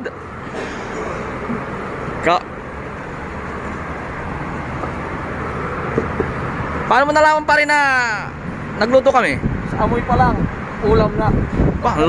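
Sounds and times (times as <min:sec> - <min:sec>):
low rumble with rushing hiss: 0:00.0 - 0:12.0
faint knocks: 0:05.9 - 0:06.4.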